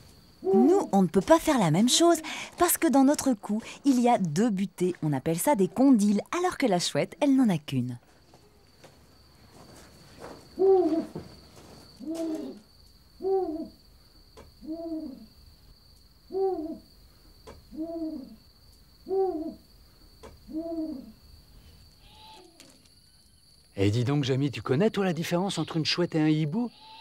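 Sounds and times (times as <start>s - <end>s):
owl hooting: 0.4s - 0.9s, 10.6s - 11.2s, 12.0s - 13.8s, 14.6s - 15.3s, 16.3s - 16.9s, 17.7s - 18.4s, 19.0s - 19.6s, 20.4s - 21.2s, 26.7s - 27.0s.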